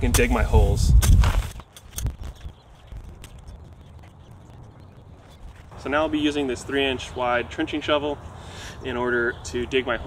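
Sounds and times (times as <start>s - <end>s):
hoe striking and scraping soil: 0.0s - 2.5s.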